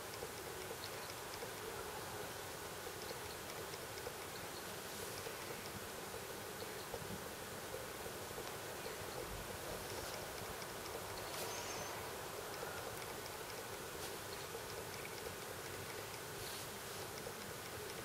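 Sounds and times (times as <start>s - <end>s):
faint background hiss: 0.0s - 18.0s
faint high ticks: 0.0s - 18.0s.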